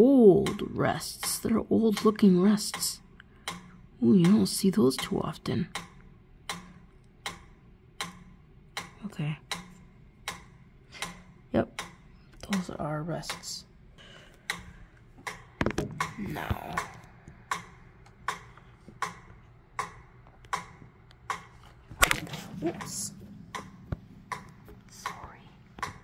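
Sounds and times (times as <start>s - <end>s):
metronome ticking: 0.0s - 26.0s.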